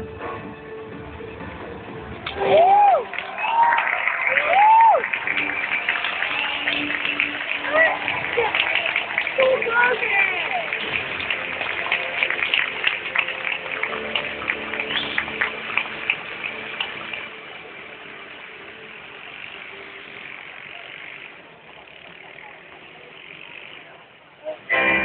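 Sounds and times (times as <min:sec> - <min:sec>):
crowd murmur: 0:01.7 - 0:25.0
audience applauding and cheering: 0:02.2 - 0:21.3.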